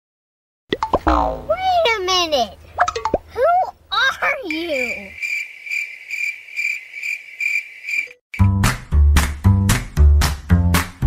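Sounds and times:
person speaking: 3.3 - 5.2
cricket chirping: 4.8 - 8.2.

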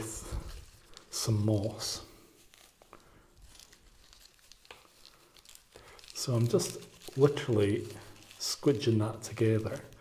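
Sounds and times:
moss rustling and crinkling: 0.0 - 10.0.

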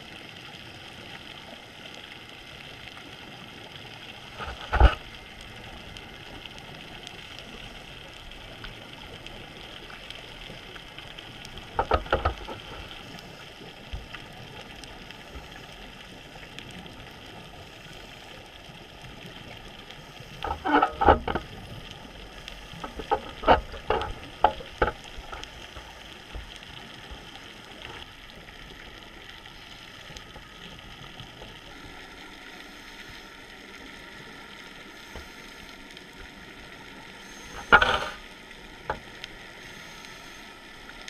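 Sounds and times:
steady underwater hiss: 0.0 - 41.0.

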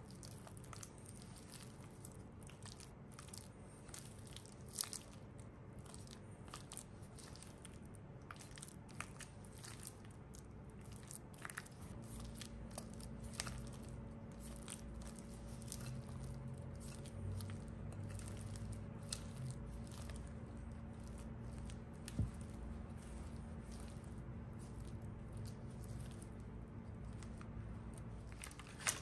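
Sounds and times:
low steady hum: 0.0 - 29.0
spatula mixing wet batter: 0.0 - 29.0.

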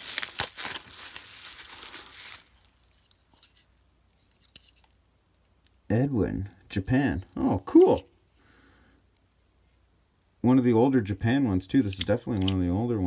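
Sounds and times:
bubble wrap crinkling and tearing: 0.0 - 3.6.

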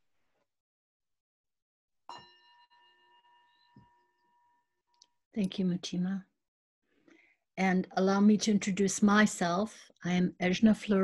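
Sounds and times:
bell ringing: 2.1 - 4.8.

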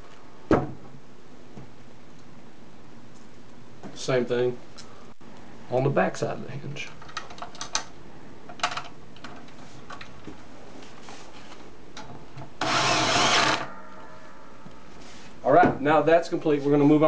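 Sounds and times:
cordless drill driving bolt: 12.6 - 13.7.

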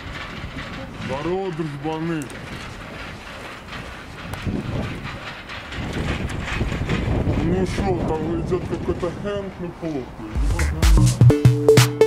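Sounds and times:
train rumbling on tracks: 0.0 - 11.4.

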